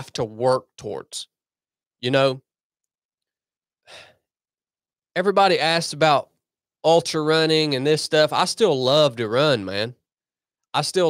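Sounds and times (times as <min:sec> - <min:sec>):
breath into microphone: 0:03.9 - 0:04.3.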